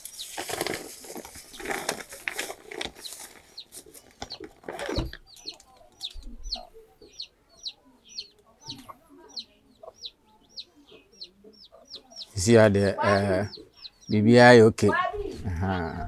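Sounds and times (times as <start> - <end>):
chick peeping: 2.9 - 16.0
hen clucking: 2.9 - 16.0.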